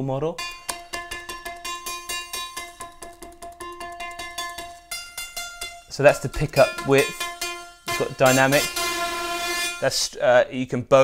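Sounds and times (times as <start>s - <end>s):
synthesizer plucked notes: 0.0s - 10.1s.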